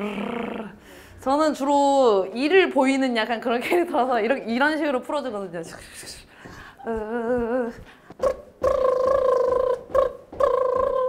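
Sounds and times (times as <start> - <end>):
short vocal sounds: 6.8 - 11.0.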